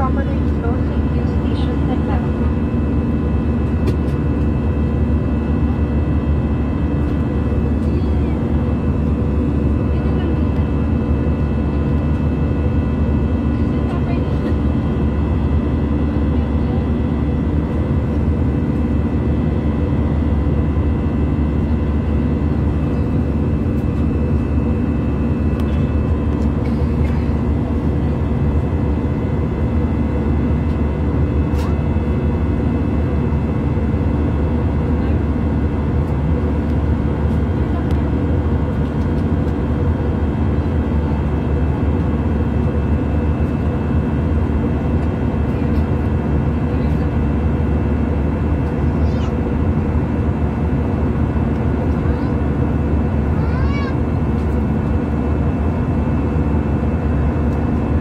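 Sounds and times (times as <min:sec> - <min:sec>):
airliner cabin drone: 0:00.0 - 0:58.0
steady hum tones: 0:00.0 - 0:58.0.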